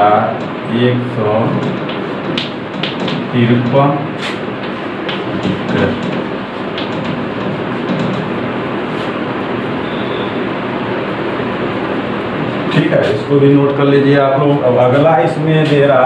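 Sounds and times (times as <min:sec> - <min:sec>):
rushing background noise: 0:00.0 - 0:16.0
chalk tapping on blackboard: 0:01.6 - 0:09.2.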